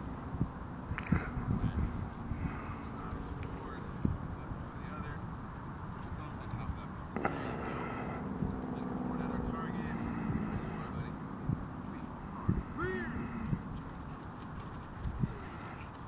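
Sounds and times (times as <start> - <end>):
wind on microphone: 0.0 - 16.0
people talking: 1.1 - 5.2, 6.0 - 15.9.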